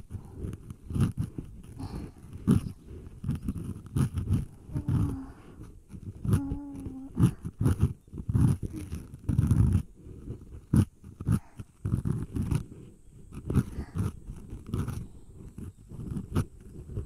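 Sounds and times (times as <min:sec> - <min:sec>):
crisp clicks: 0:00.0 - 0:17.0
soft rubbing on microphone: 0:00.0 - 0:17.0.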